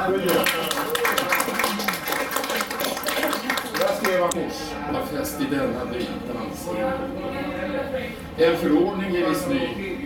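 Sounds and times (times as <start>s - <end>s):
small group applauding: 0.0s - 4.4s.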